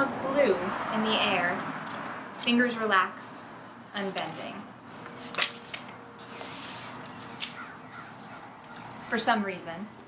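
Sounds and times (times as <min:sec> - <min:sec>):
paper crackles: 0:05.0 - 0:08.8
paper rustling: 0:05.0 - 0:08.8.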